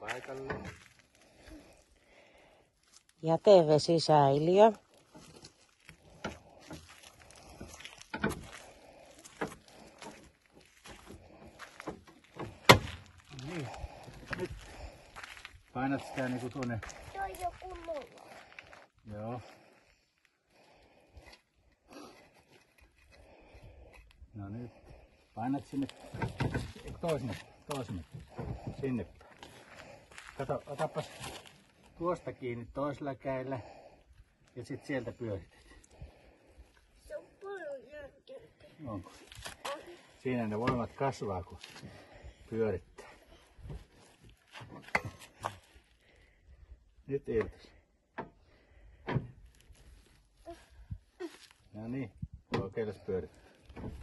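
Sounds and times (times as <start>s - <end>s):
hand crank creaking and knocking: 5.0s - 13.3s, 25.6s - 29.0s.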